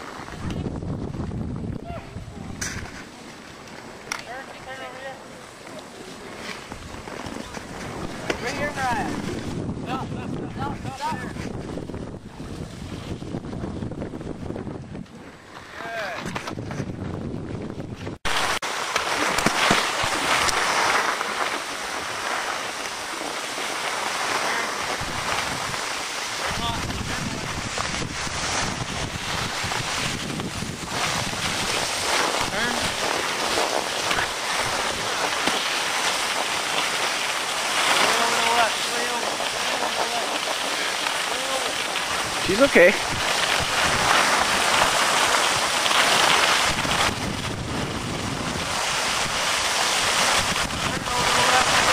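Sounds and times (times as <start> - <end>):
skis sliding over snow: 0.0 - 1.4, 2.1 - 13.9, 15.1 - 16.9, 18.0 - 51.9
wind rushing across microphone: 0.0 - 3.3, 6.1 - 18.6, 19.2 - 35.4, 36.2 - 51.9.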